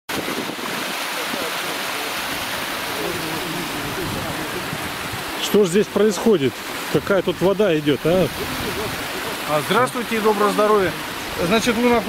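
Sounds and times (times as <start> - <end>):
water rushing: 0.1 - 12.0.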